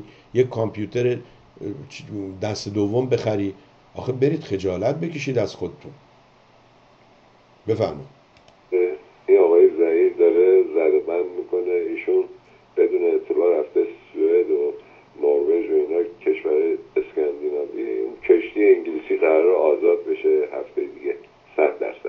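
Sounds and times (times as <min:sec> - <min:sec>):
faint steady hum: 0:00.0 - 0:22.0
person talking over telephone: 0:08.7 - 0:22.0.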